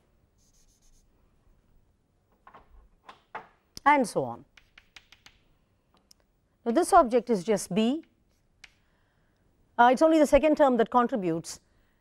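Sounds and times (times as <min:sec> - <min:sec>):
duster rubbing on chalkboard: 0:00.4 - 0:01.1.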